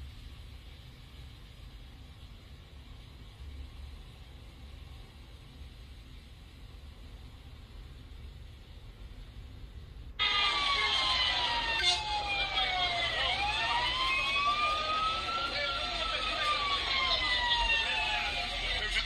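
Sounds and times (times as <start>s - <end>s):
emergency vehicle siren wailing: 10.2s - 19.0s.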